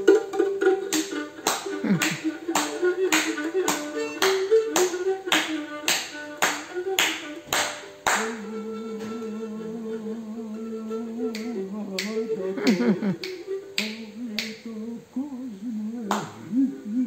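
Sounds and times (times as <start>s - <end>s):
bowed lyra melody: 0.0s - 14.3s.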